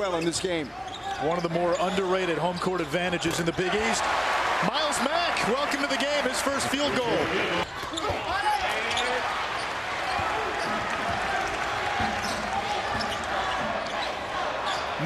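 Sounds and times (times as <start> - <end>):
arena crowd noise: 0.0 - 15.0.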